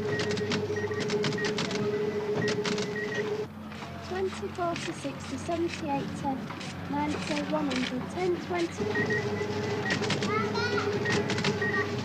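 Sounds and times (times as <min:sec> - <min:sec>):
receipt printer clattering: 0:06.6 - 0:12.0.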